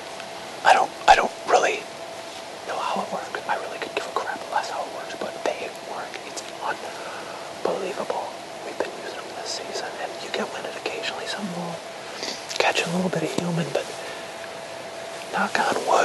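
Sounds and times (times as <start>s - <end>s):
man whispering: 0.6s - 1.9s, 2.6s - 14.3s, 15.3s - 16.0s.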